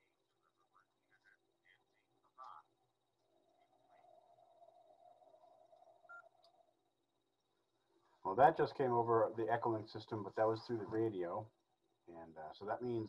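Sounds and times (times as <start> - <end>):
faint radio murmur: 0.0 - 2.8, 8.3 - 11.4.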